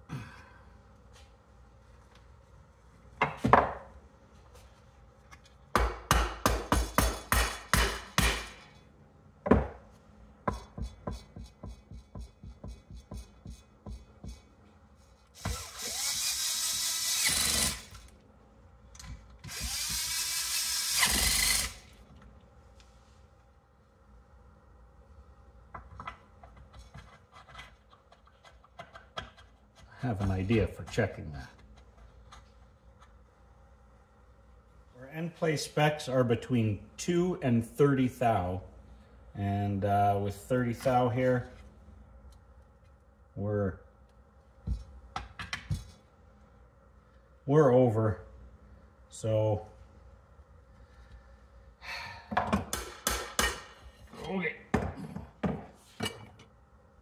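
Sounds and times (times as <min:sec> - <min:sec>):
cordless drill running: 0:15.4 - 0:18.1, 0:19.5 - 0:21.9.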